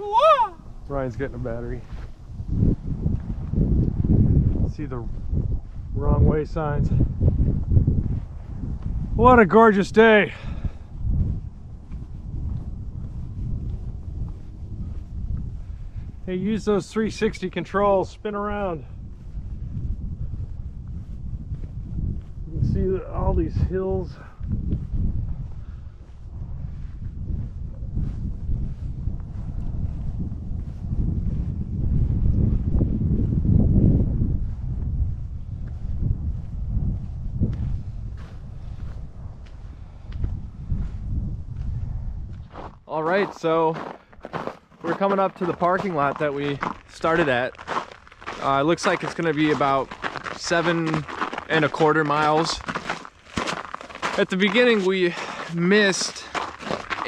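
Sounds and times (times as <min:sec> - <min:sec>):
wind buffeting microphone: 0:00.0 - 0:57.0
footsteps on pavement: 0:01.7 - 0:06.0, 0:10.3 - 0:16.2, 0:18.8 - 0:22.5, 0:23.6 - 0:32.8, 0:35.5 - 0:57.0.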